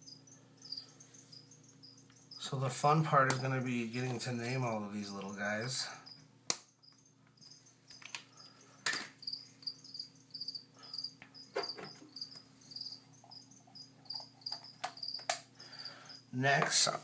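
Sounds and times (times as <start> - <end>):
cricket chirping: 0.0 - 4.6, 5.2 - 16.9.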